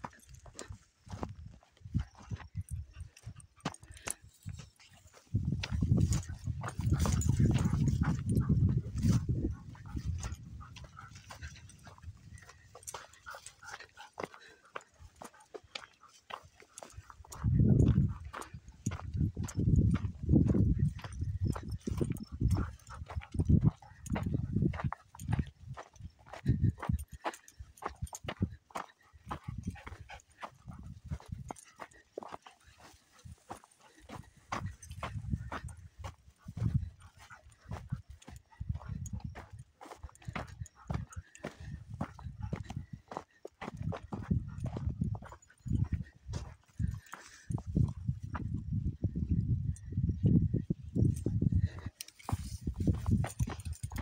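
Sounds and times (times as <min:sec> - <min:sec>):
footsteps crunching on dirt: 0:00.0 - 0:48.7, 0:51.0 - 0:54.0
wind gusts on microphone: 0:04.4 - 0:12.7, 0:17.0 - 0:27.2, 0:34.1 - 0:54.0.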